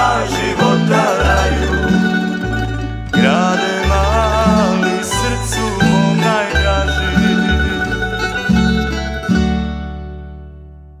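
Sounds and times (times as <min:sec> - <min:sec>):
plucked-string folk ensemble: 0:00.0 - 0:11.0.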